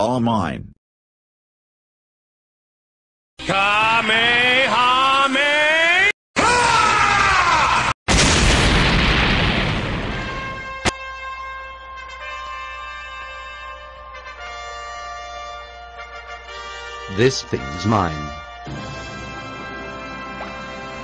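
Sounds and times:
cartoon explosion: 6.4s - 10.9s.

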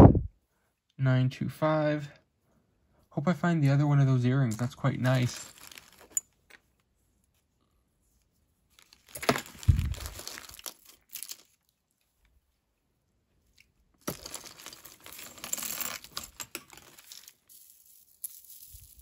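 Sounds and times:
plastic bags crinkling: 4.5s - 6.3s, 8.8s - 11.7s, 14.0s - 19.0s
jewelry chains and beads clinking: 4.5s - 6.6s, 9.0s - 11.6s, 14.0s - 19.0s.

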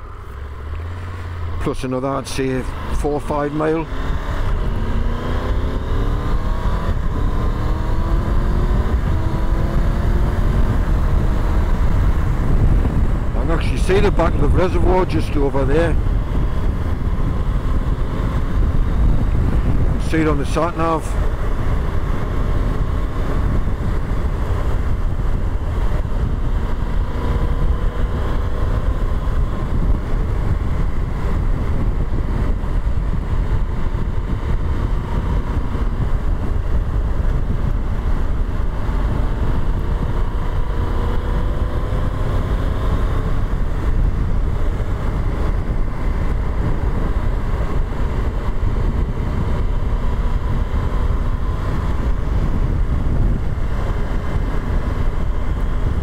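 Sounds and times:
motorcycle engine cruising: 0.0s - 56.0s
wind rumbling on microphone: 0.0s - 56.0s.

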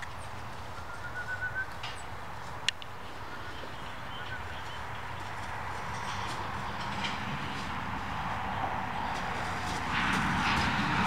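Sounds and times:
bird calling quick notes: 0.8s - 1.8s.

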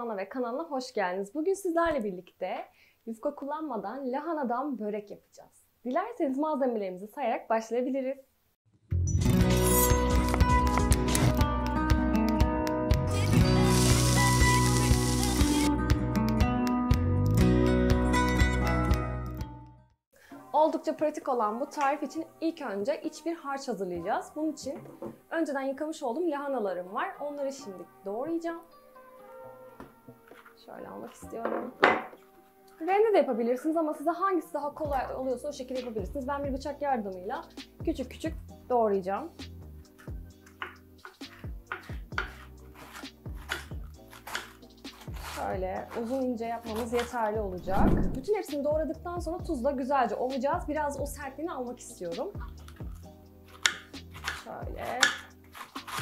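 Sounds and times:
background music: 8.8s - 56.0s
food sizzling in a pan: 13.4s - 15.7s
knife slicing cabbage on board: 40.0s - 48.2s, 52.4s - 56.0s.

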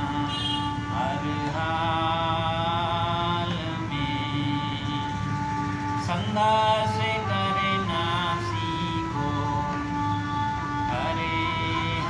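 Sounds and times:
harmonium melody over drone: 0.0s - 12.0s.

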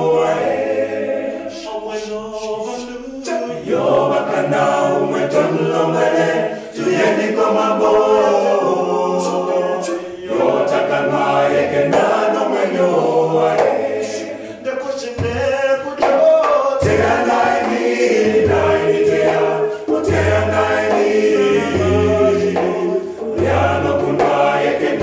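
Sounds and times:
male vocal group singing: 0.0s - 25.0s
djembe hand drum: 3.6s - 8.9s, 10.3s - 14.4s, 15.0s - 25.0s
hand claps: 13.5s - 14.2s, 16.0s - 17.9s.

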